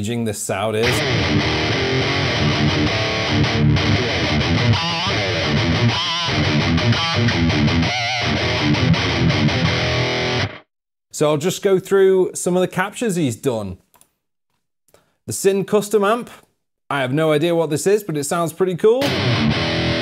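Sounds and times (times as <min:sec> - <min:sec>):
distorted electric guitar riff: 0:00.8 - 0:10.7, 0:19.0 - 0:20.0.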